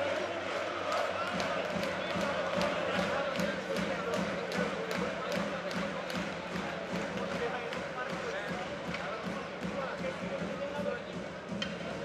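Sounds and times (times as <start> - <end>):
crowd voices: 0.0 - 12.0
drum beating steadily: 1.0 - 12.0.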